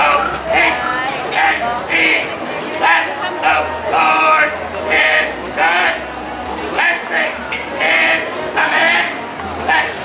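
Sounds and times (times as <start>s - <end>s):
man preaching loudly: 2.8s - 6.0s, 6.7s - 10.0s.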